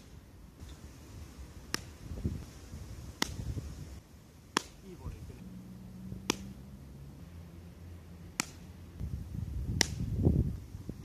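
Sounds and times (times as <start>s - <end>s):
baseball smacking into leather glove: 1.7s - 2.0s, 3.2s - 3.5s, 4.5s - 4.9s, 6.2s - 6.6s, 8.3s - 8.7s, 9.8s - 10.1s.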